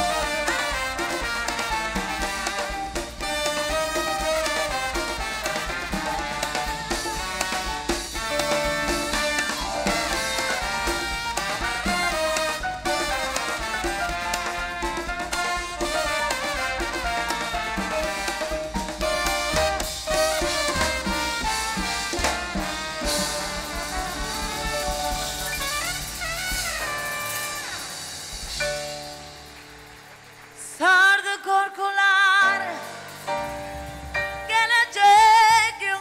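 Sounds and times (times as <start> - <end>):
horn section: 0.0 - 34.1
latin dance band playing: 0.0 - 36.0.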